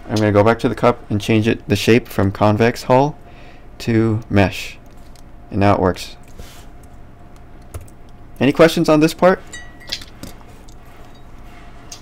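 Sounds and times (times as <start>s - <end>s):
low steady hum: 0.0s - 12.0s
keyboard keystrokes: 7.6s - 8.0s.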